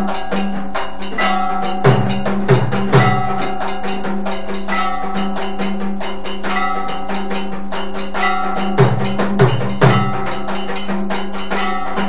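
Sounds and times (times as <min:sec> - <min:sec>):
percussion in fast beat: 0:00.0 - 0:12.0
ringing temple bells: 0:00.0 - 0:12.0.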